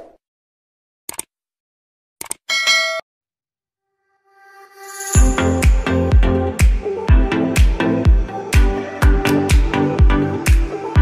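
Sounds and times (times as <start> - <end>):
notification bell ding: 2.5 - 3.0.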